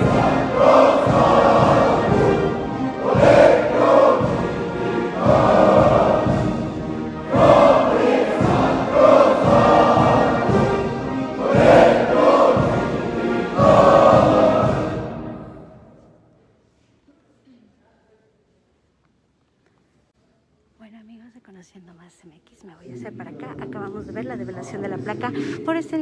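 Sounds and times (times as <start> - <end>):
crowd singing an anthem: 0.0 - 15.8
musical accompaniment: 0.0 - 16.1.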